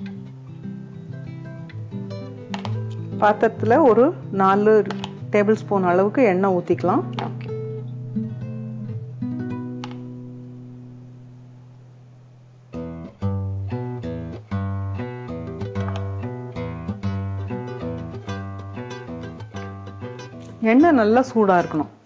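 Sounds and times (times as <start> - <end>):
acoustic guitar music: 0.0 - 22.0.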